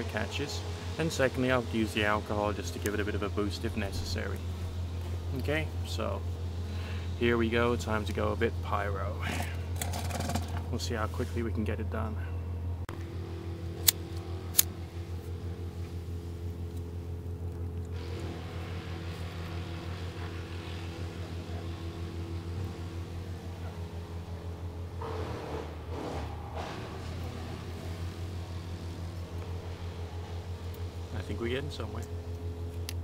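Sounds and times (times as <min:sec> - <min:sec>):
chainsaw engines droning: 0:00.0 - 0:33.0.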